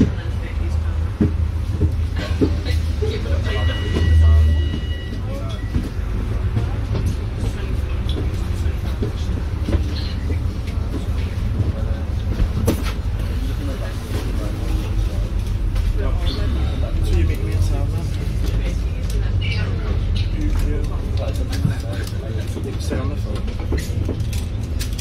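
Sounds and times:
bus drivetrain and road rumble: 0.0 - 25.0
rattles and knocks from bus body: 6.6 - 13.1, 21.4 - 24.8.

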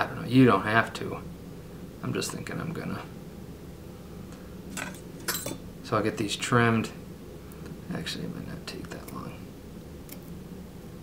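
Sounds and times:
light metallic clinks: 4.8 - 5.6.

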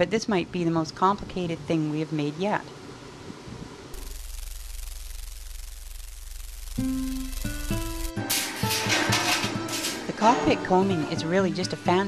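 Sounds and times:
low electrical hum: 0.0 - 10.3
crackling hiss of sparks: 4.0 - 10.1.

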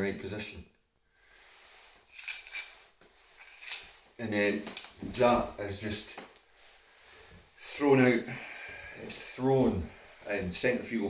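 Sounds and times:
nylon jacket rustling: 1.2 - 11.0.

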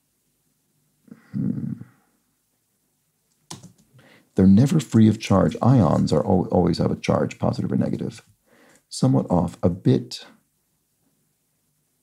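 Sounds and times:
computer keyboard key clicks: 3.5 - 3.8.

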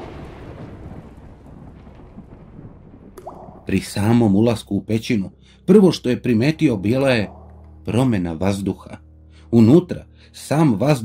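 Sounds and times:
thunder rumble: 0.0 - 5.2.

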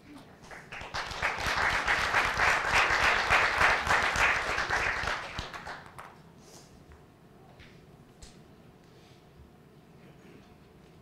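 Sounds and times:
audience clapping: 0.1 - 6.2.

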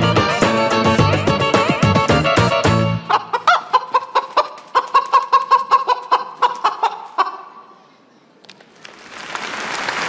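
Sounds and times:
chicken clucks: 3.1 - 7.7.

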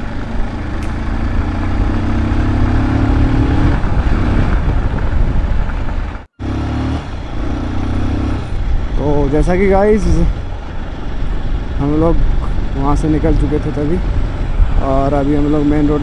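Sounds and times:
motorcycle engine running: 0.0 - 16.0
wind rumble on microphone: 0.0 - 16.0.

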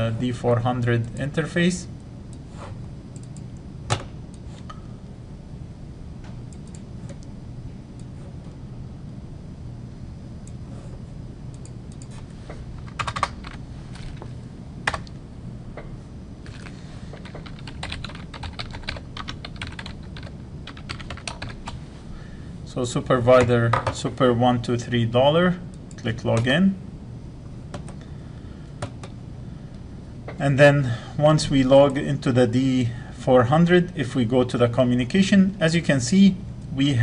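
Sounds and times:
low hum: 0.0 - 37.0
computer mouse clicks: 3.2 - 4.7, 6.5 - 7.3, 11.5 - 12.2.

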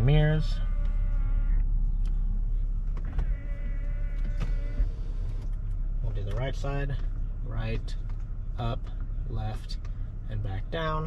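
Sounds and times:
folding mirror motors whirring: 0.0 - 6.0.

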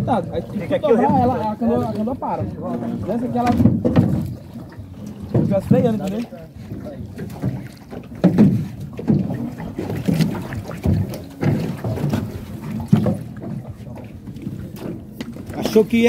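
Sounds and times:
boat knocks: 0.0 - 16.0
paddle pulling through water: 0.0 - 16.0.

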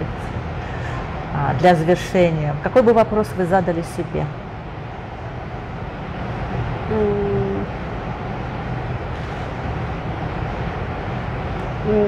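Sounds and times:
low rumble with hiss: 0.0 - 12.0
woman humming mm: 6.9 - 7.7.

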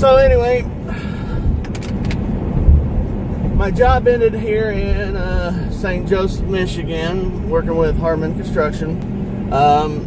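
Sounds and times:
car tyre and engine rumble: 0.0 - 10.0.

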